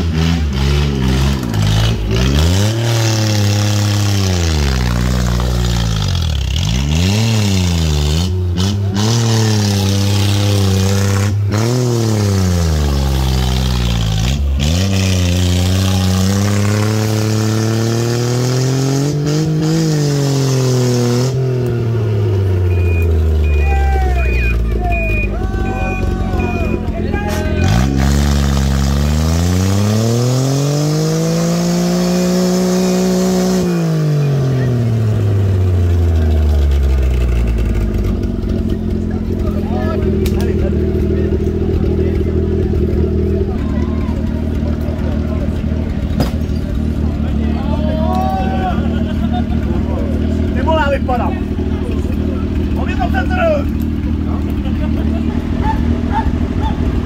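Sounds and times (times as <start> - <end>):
buggy engine revving: 0.0 - 57.0
voices: 21.8 - 28.1, 38.0 - 57.0.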